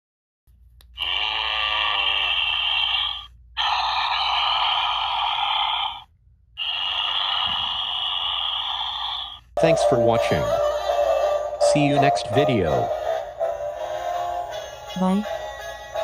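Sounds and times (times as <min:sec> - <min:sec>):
raspy breathy sound effect: 0:01.0 - 0:09.5.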